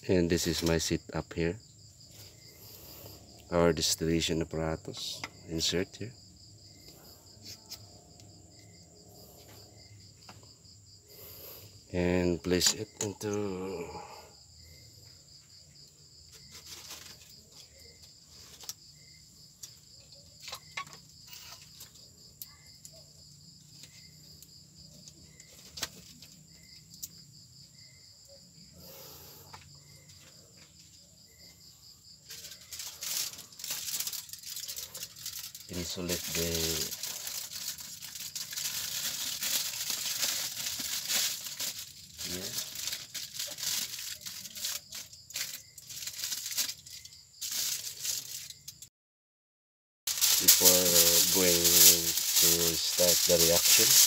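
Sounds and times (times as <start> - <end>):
high insect chirping: 0.0 - 48.9, 50.1 - 54.0
aluminium foil crinkling: 16.2 - 18.8, 19.5 - 22.9, 23.5 - 27.2, 32.2 - 48.9, 50.1 - 54.0.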